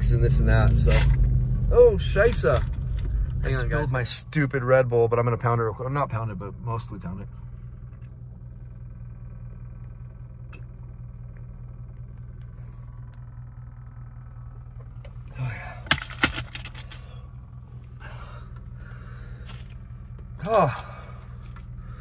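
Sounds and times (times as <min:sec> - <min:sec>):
low hum inside car: 0:00.0 - 0:22.0
man breathing hard: 0:16.9 - 0:19.7, 0:20.6 - 0:22.0.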